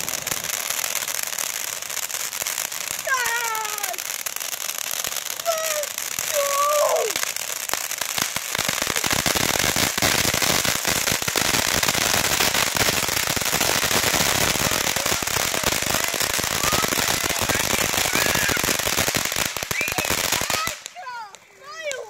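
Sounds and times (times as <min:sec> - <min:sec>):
fireworks hissing sparks: 0:00.0 - 0:22.0
rapid crackling pops: 0:00.0 - 0:22.0.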